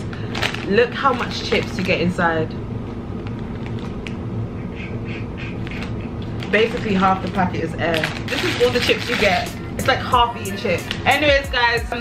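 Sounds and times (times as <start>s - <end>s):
chip bag crinkling: 0.0s - 2.2s, 3.2s - 4.2s, 5.6s - 11.2s
low background rumble: 0.0s - 12.0s.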